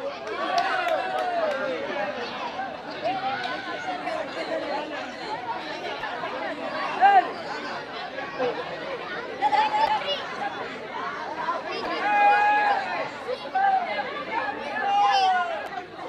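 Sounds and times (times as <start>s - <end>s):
crowd chattering and shouting: 0.0s - 16.0s.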